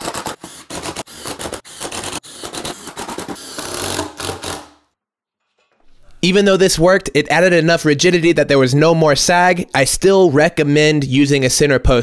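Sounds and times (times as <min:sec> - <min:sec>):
cordless drill driving screws: 0:00.1 - 0:04.8.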